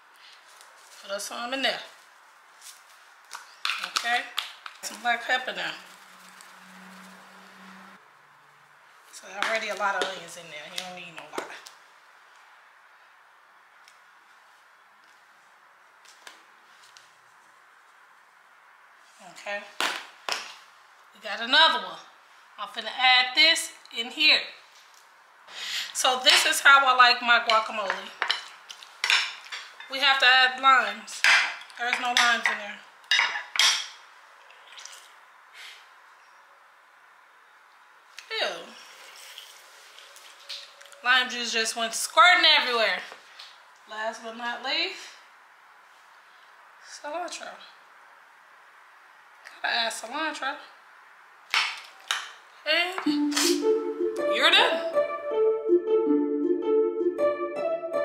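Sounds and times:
woman speaking: 0:01.0 - 0:02.0, 0:03.8 - 0:05.9, 0:09.2 - 0:11.7, 0:19.2 - 0:19.8, 0:21.2 - 0:24.6, 0:26.0 - 0:28.2, 0:29.9 - 0:32.8, 0:38.3 - 0:38.8, 0:41.0 - 0:43.1, 0:43.9 - 0:45.2, 0:46.9 - 0:47.7, 0:49.5 - 0:50.6, 0:52.7 - 0:53.6, 0:54.2 - 0:55.0.

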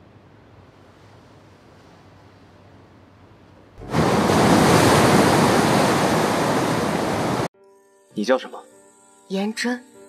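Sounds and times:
faint hiss: 0:03.8 - 0:07.5
surf crashing against rocks: 0:03.8 - 0:07.5.

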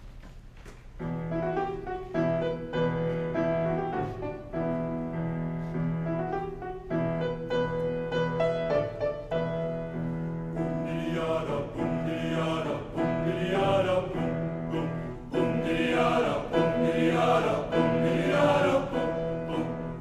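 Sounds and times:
piano accompaniment: 0:01.0 - 0:20.0.

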